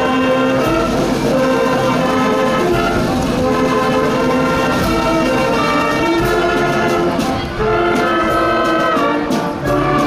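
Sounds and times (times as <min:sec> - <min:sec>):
brass band playing held chords: 0:00.0 - 0:10.0.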